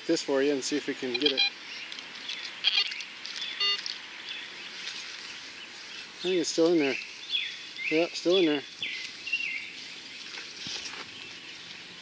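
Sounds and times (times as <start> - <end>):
birds chirping faintly: 0.0 - 12.0
metal detector beep: 1.0 - 1.6, 2.6 - 3.0, 3.6 - 3.8.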